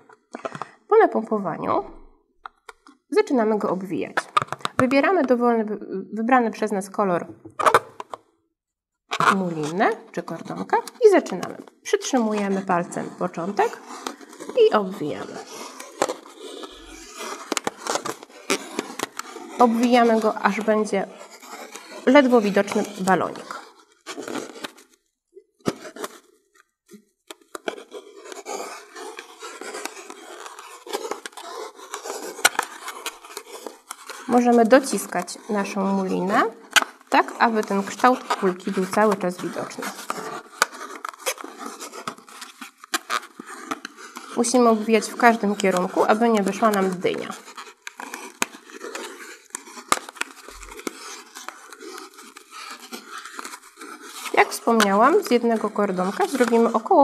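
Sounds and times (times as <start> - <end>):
thread scraping over balloon: 1.8 - 5.4, 7.4 - 8.2, 9.1 - 57.0.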